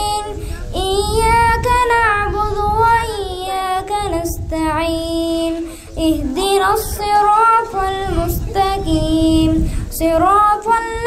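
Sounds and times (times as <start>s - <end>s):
boy chanting recitation: 0.0s - 11.0s.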